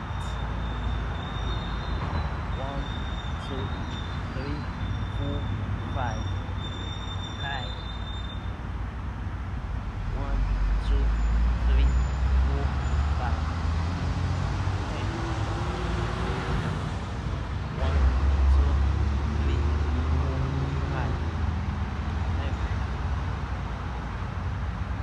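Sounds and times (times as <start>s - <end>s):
faint wavering sounds: 0.0s - 8.6s
low outdoor rumble: 0.0s - 25.0s.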